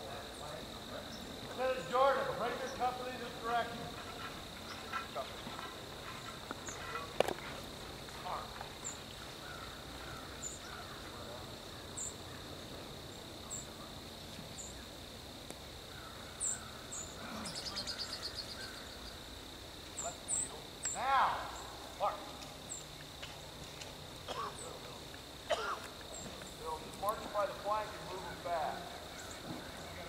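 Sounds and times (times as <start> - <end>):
insect chirps: 0.0 - 30.0
insect trill: 0.0 - 30.0
insects droning: 0.0 - 30.0
man calling out: 21.0 - 22.3.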